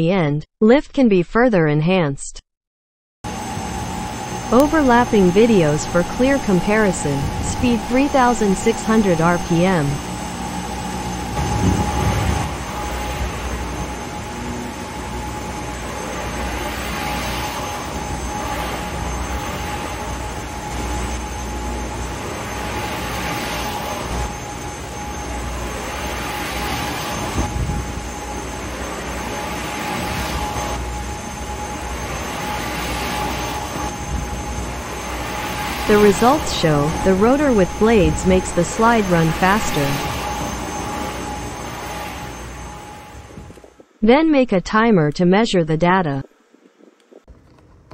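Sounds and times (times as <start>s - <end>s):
electric fans blowing: 3.3s - 44.0s, 46.3s - 47.9s
high-pitched hum: 3.3s - 47.7s.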